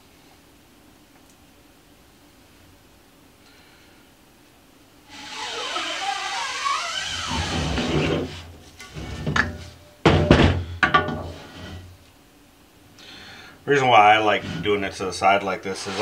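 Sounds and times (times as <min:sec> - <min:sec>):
heavy thunks: 0:09.0 - 0:11.9.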